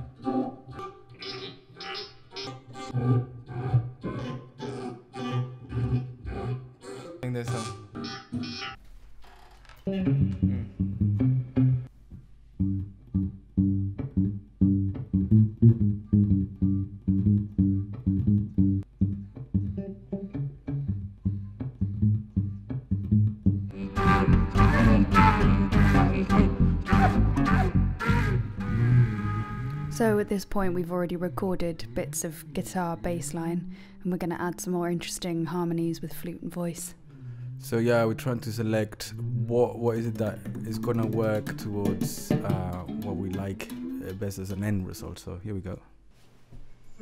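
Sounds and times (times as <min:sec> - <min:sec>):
bass line: 0:09.9 - 0:11.9, 0:12.6 - 0:30.2
plucked guitar notes: 0:09.9 - 0:11.9, 0:12.6 - 0:30.2, 0:40.0 - 0:44.9.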